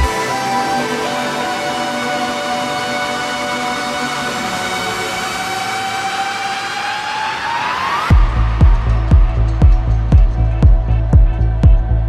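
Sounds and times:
electronic drone: 0.0 - 12.0.

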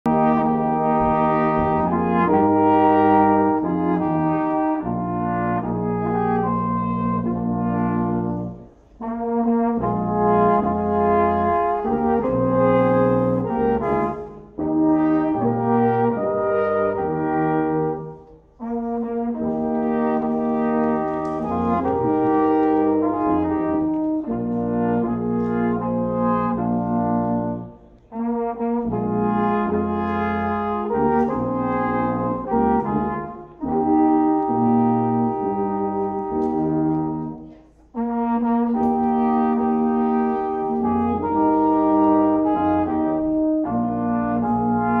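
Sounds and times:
brass ensemble playing slow tune: 0.0 - 45.0.

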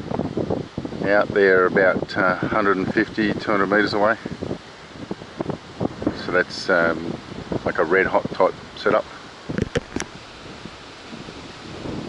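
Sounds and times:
wind on microphone: 0.0 - 12.0.

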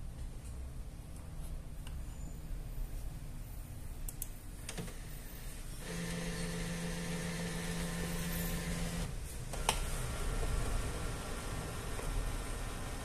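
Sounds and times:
click: 4.1 - 4.8
scanner motor humming: 5.8 - 9.1.

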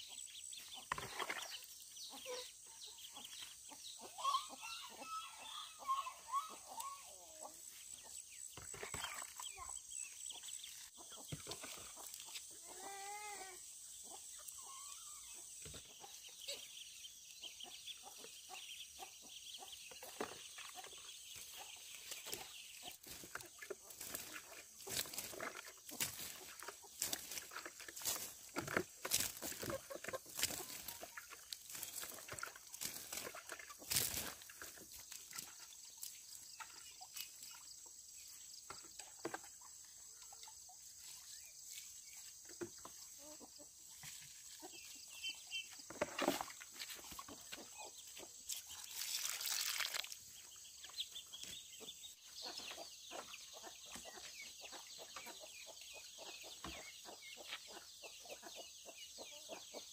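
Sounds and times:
chickens clucking: 0.0 - 49.0, 50.0 - 59.9
footsteps: 20.0 - 36.2.

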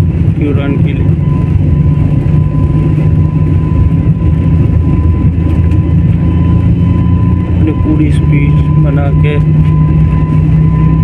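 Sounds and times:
jet engines rumbling: 0.0 - 11.0
thin steady whine: 0.0 - 11.0.

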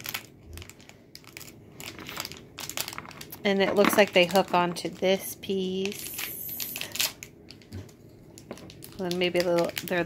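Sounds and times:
toy packaging crinkling: 0.0 - 10.0.

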